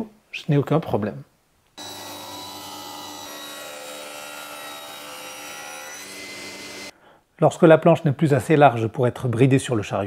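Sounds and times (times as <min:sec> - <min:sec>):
circular saw whining: 0:01.8 - 0:06.9.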